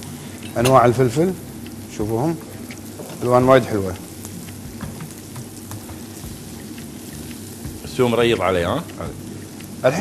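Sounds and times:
onions sizzling in a pan: 0:00.0 - 0:10.0.

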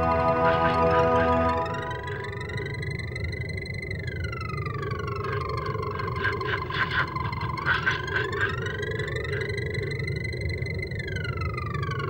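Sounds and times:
gliding synthesizer tones: 0:00.0 - 0:12.0.

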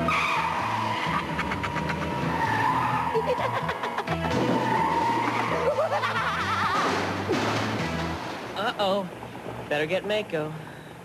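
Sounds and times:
car tyres squealing: 0:00.0 - 0:06.0
background music: 0:00.0 - 0:10.3.

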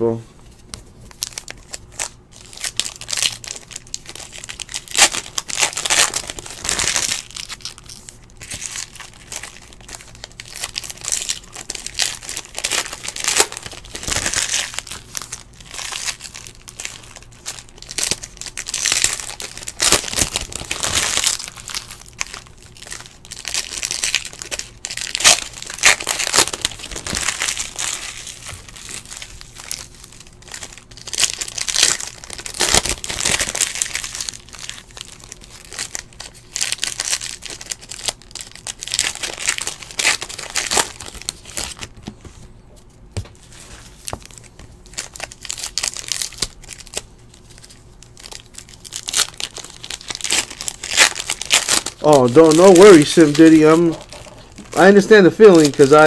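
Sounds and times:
card pack wrappers tearing and crinkling: 0:00.6 - 0:42.0, 0:43.4 - 0:56.0.

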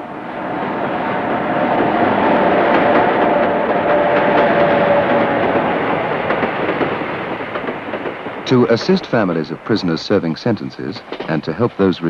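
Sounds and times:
train rumbling on rails: 0:00.0 - 0:12.0
wheels clicking over rail joints: 0:02.6 - 0:10.2, 0:10.8 - 0:12.0.

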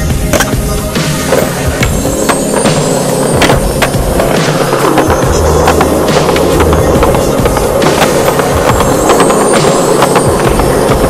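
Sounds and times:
music track: 0:00.0 - 0:11.0
skateboard rolling on concrete: 0:00.0 - 0:11.0
sharp skateboard clicks: 0:01.2 - 0:11.0.

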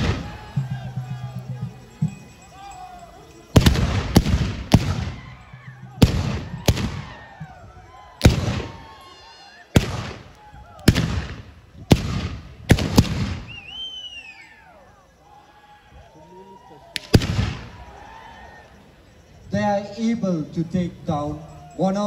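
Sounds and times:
people shouting and crying: 0:00.0 - 0:22.0
gunshots: 0:03.6 - 0:05.2, 0:06.0 - 0:07.2, 0:08.2 - 0:08.8, 0:09.7 - 0:13.6, 0:17.0 - 0:17.8.

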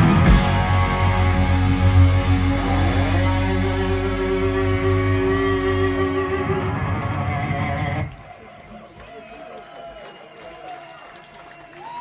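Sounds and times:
guitars ringing out: 0:00.0 - 0:08.1
metal band playing live: 0:00.0 - 0:08.1.

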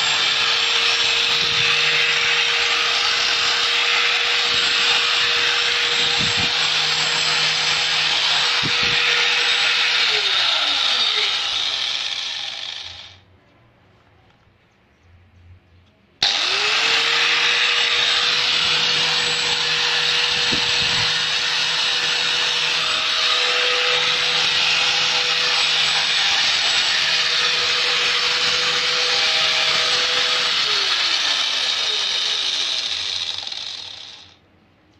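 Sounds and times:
angle grinder high whine: 0:00.0 - 0:13.2, 0:16.2 - 0:34.4
grinder winding down: 0:00.0 - 0:13.2, 0:16.2 - 0:34.4.

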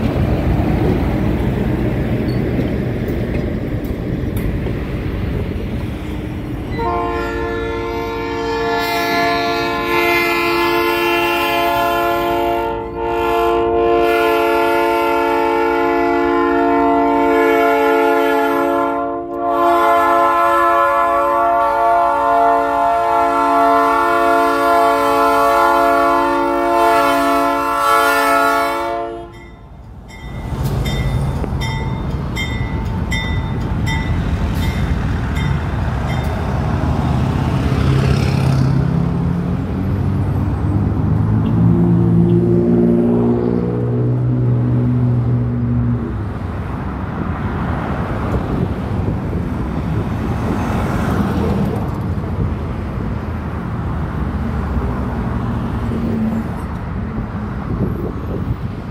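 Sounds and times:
diesel engine rumbling: 0:00.0 - 0:13.4
rolling train rumble: 0:00.0 - 0:58.9
locomotive air horn: 0:06.6 - 0:29.5.

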